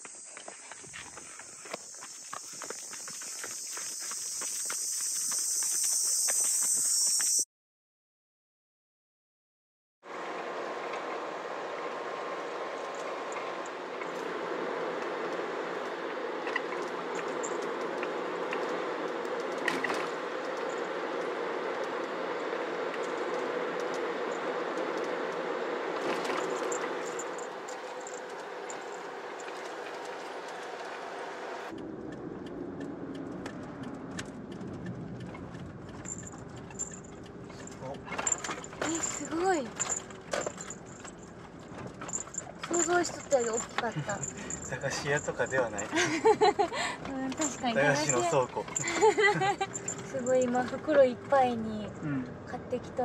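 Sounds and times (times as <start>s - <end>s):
van road and running noise: 0.0s - 7.5s, 10.0s - 53.0s.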